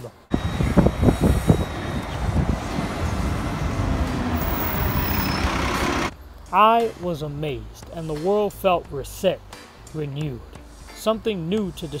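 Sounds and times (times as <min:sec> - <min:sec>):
street traffic: 0:00.0 - 0:06.5
bus engine passing: 0:00.3 - 0:06.1.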